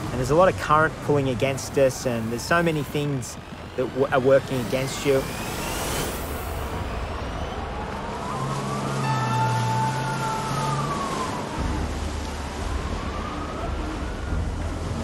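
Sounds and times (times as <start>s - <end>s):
breaking surf: 0.0s - 15.0s
siren wailing: 3.8s - 15.0s.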